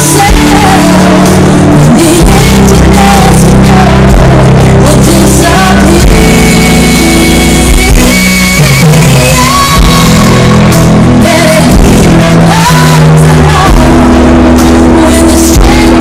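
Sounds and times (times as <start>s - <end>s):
drums: 0.0s - 16.0s
electric guitar: 0.0s - 16.0s
keyboards: 0.0s - 16.0s
woman singing: 0.0s - 16.0s.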